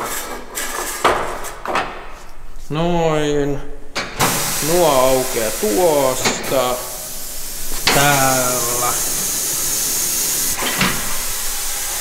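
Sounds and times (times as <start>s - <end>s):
compressed air hissing: 4.0s - 12.0s.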